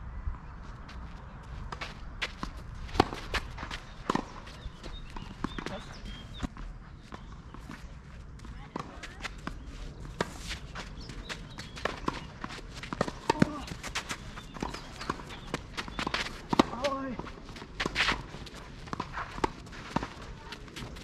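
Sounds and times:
shoes scuffing on clay: 0:00.6 - 0:21.0
tennis ball bouncing: 0:01.7 - 0:06.4, 0:11.6 - 0:21.0
racket striking tennis ball: 0:14.6 - 0:16.9.

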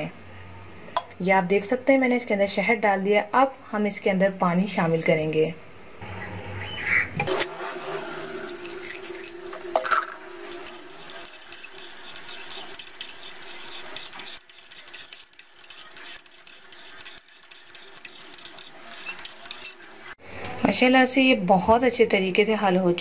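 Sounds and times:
water pouring into a mug: 0:08.2 - 0:12.9
teaspoon clinking in a mug: 0:08.7 - 0:19.9.

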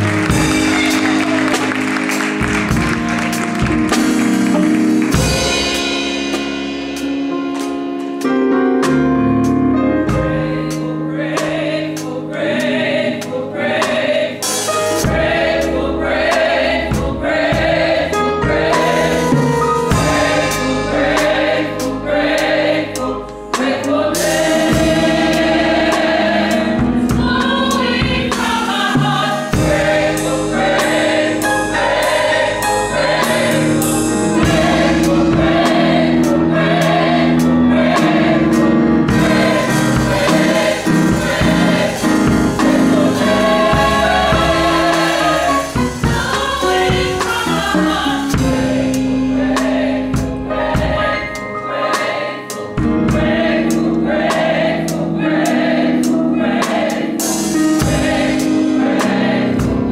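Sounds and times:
gospel choir singing: 0:00.0 - 0:07.7, 0:08.5 - 0:59.9
drum kit hits: 0:00.0 - 0:10.8, 0:13.8 - 0:59.9
band accompaniment: 0:00.0 - 0:59.9.

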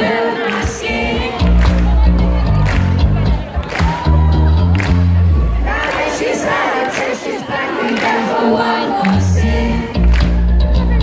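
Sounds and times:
band music: 0:00.0 - 0:07.8, 0:08.5 - 0:11.0
crowd cheering: 0:00.0 - 0:11.0.

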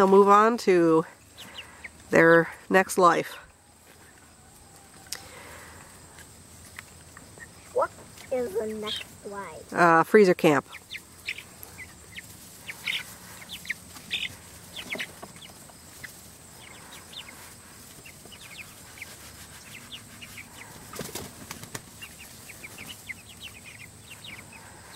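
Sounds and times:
chicks peeping: 0:01.0 - 0:02.6, 0:03.4 - 0:24.9.

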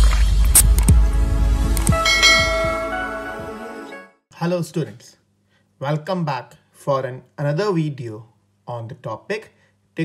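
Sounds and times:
bell chime: 0:02.0 - 0:03.4.

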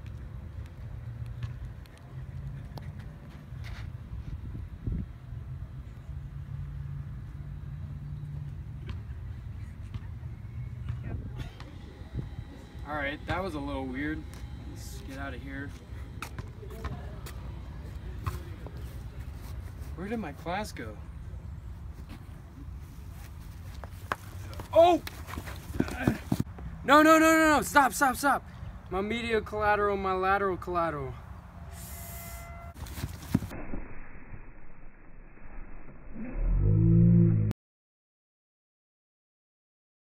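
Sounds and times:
men grappling on grass: 0:21.9 - 0:26.5, 0:32.8 - 0:33.5.

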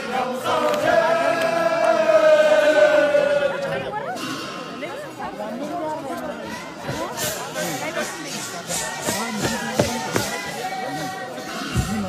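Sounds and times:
men singing in unison: 0:00.0 - 0:03.6.

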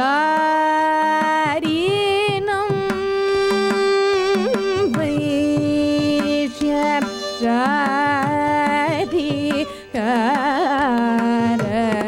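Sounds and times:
violin: 0:00.0 - 0:12.0
woman singing: 0:00.0 - 0:12.0.

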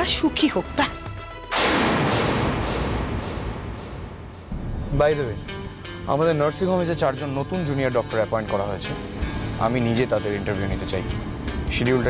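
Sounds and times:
dramatic crash hit: 0:01.5 - 0:05.6.

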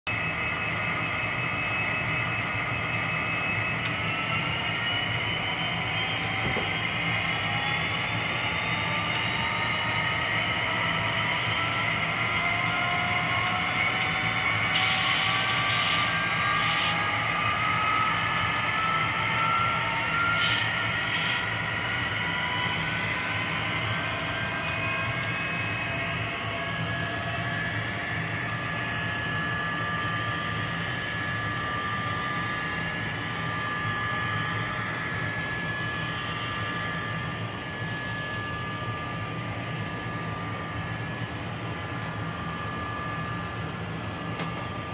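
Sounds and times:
model train whine: 0:00.1 - 0:44.9
low hum: 0:00.3 - 0:44.9
short hissing bursts: 0:14.8 - 0:17.0.

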